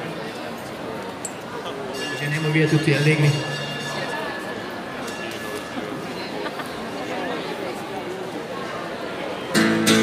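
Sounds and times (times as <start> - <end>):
low crowd chatter: 0.0 - 10.0
acoustic guitar strumming: 9.5 - 10.0.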